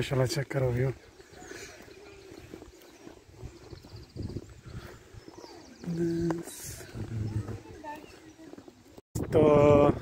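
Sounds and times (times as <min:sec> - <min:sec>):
footsteps on grass: 0:00.0 - 0:09.0.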